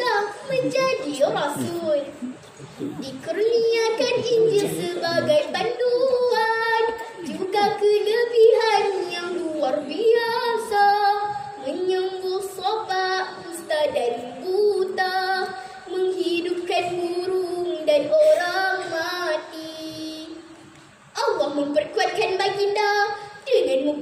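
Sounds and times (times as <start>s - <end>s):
girl singing into microphone: 0.0s - 24.0s.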